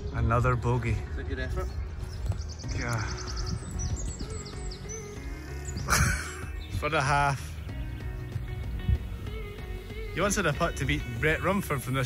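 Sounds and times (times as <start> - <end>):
songbird singing: 0.0 - 12.0.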